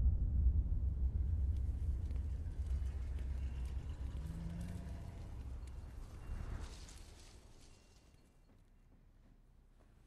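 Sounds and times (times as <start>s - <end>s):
low steady rumble: 0.0s - 5.9s.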